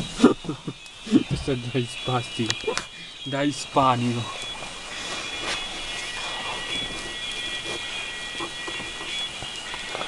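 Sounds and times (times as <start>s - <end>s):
faint high-pitched steady tones: 0.0s - 10.0s
steady background noise: 0.0s - 10.0s.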